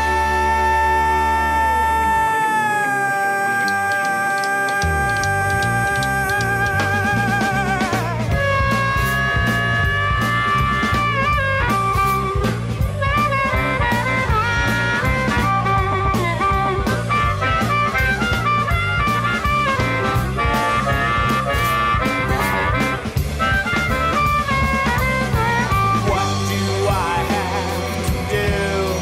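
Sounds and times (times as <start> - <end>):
bass guitar: 0.0 - 29.0
slide guitar: 0.0 - 29.0
drum beat: 4.0 - 29.0.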